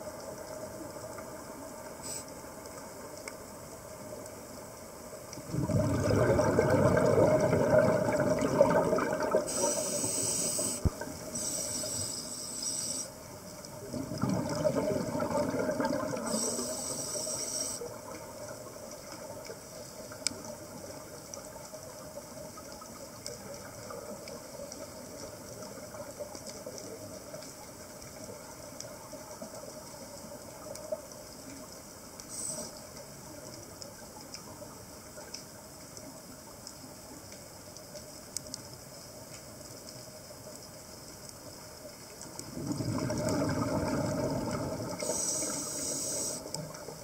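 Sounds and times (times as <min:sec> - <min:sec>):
faint background hiss: 0:00.0 - 0:47.0
exhaled bubbles underwater: 0:05.4 - 0:11.6, 0:13.6 - 0:31.1, 0:42.2 - 0:47.0
regulator hissing: 0:09.5 - 0:13.1, 0:16.3 - 0:17.8, 0:45.0 - 0:46.5.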